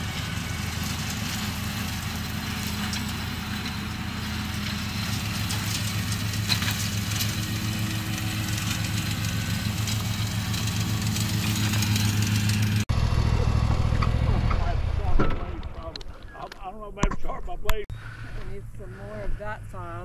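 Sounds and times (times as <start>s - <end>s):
mower engine running: 0.0s - 16.2s.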